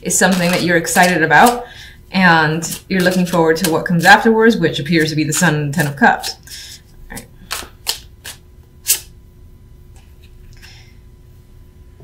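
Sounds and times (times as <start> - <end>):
cards rustling: 0.1 - 1.6
playing cards snapping: 7.5 - 9.1.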